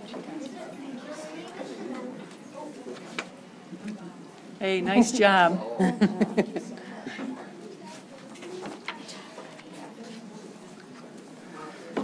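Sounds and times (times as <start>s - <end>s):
low murmur of voices: 0.0s - 12.0s.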